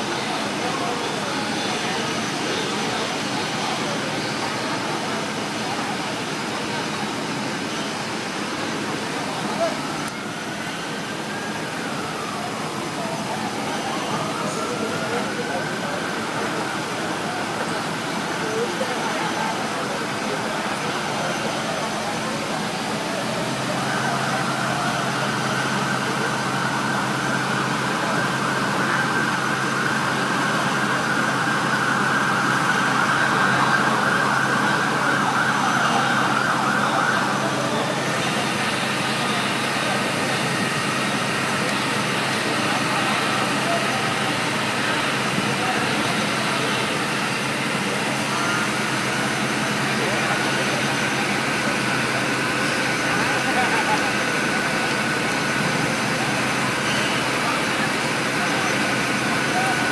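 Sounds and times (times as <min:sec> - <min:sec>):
fire truck engine running: 0:00.0 - 0:59.9.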